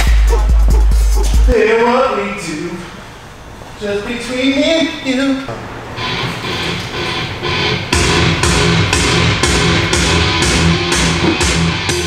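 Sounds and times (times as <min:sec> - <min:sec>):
background music with steady beat: 0:00.0 - 0:01.6, 0:06.0 - 0:12.0.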